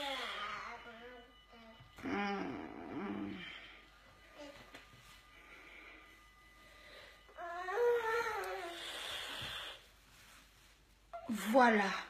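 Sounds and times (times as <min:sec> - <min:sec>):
woman moaning: 0:00.0 - 0:03.8.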